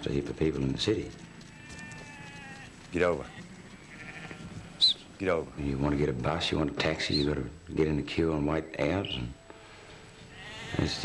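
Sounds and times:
sheep bleating: 0:01.4 - 0:05.1, 0:10.2 - 0:11.0.

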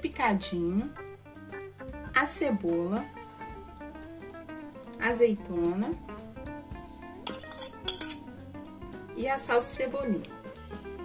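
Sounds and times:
background guitar music: 0:00.0 - 0:11.0
olives tipped into glass bowl: 0:07.3 - 0:08.2
china clinking on glass: 0:07.3 - 0:08.3.

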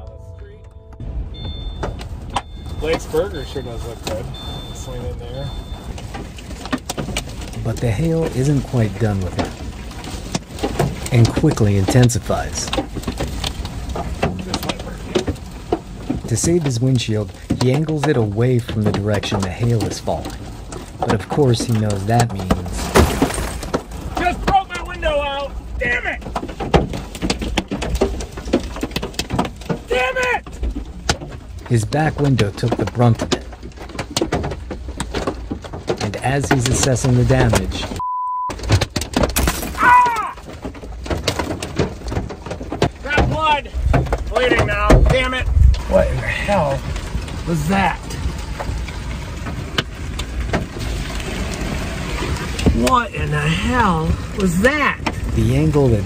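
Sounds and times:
low rumble: 0:00.0 - 0:05.8
censor bleep: 0:00.0 - 0:05.9, 0:38.0 - 0:38.6
hail knocking on vehicle roof: 0:05.5 - 0:38.0, 0:38.6 - 0:56.0
hailstone crashing through window: 0:22.7 - 0:24.5, 0:38.6 - 0:43.3.

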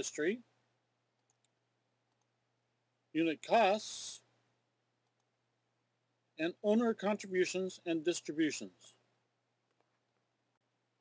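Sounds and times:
computer mouse clicking: 0:01.2 - 0:02.3, 0:05.0 - 0:05.3.

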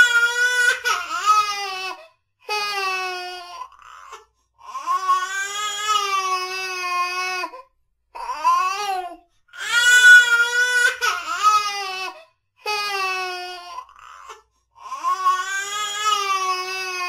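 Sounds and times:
baby crying: 0:00.0 - 0:17.0.

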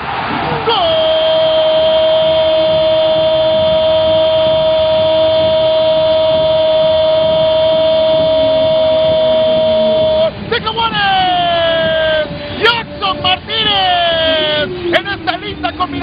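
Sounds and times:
sports commentator goal cry: 0:00.5 - 0:16.0.

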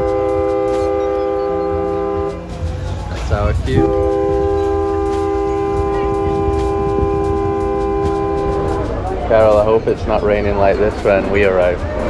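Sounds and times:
riverboat horn blast: 0:00.0 - 0:09.7
low rumble: 0:00.0 - 0:12.0.

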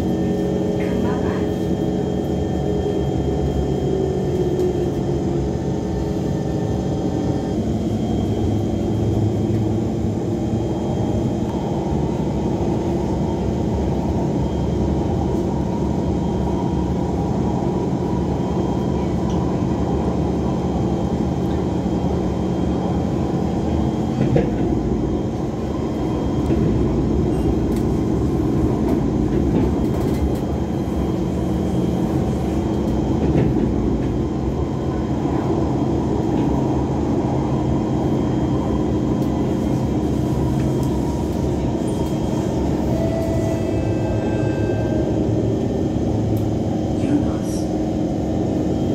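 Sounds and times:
train wheels rumbling on rails: 0:00.0 - 0:48.9.

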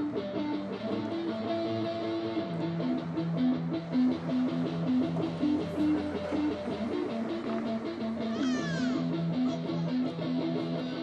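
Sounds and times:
electric guitar melody: 0:00.0 - 0:11.0.

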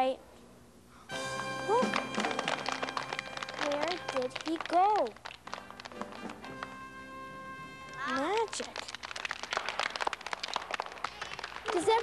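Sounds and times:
children clapping: 0:01.7 - 0:07.0, 0:07.8 - 0:12.0.

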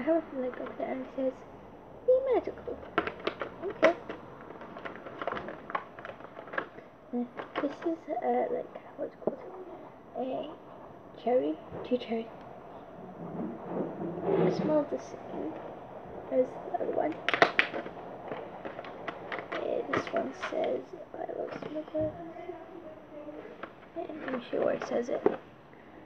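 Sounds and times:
light clicks and rustles: 0:02.3 - 0:11.0, 0:11.6 - 0:25.5.

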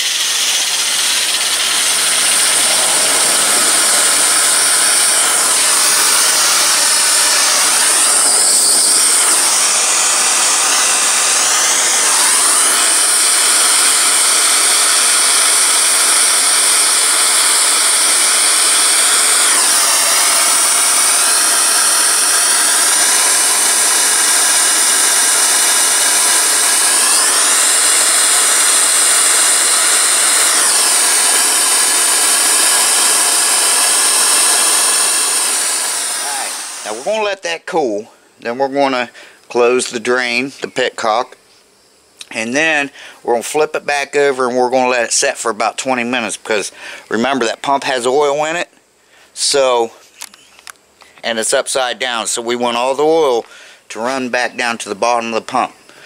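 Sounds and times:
gas torch hissing: 0:00.0 - 0:37.6.

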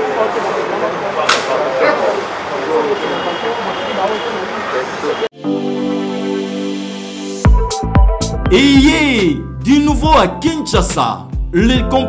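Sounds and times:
people talking indistinctly: 0:08.5 - 0:12.0.

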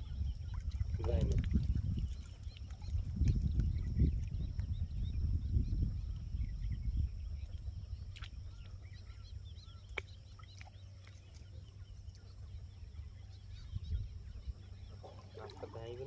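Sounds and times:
low rumble: 0:00.0 - 0:09.8
bird calls: 0:00.0 - 0:16.0.

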